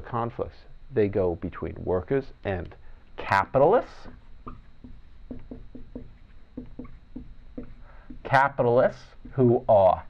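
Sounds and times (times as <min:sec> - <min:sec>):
marker squeaking on whiteboard: 0:03.8 - 0:09.7.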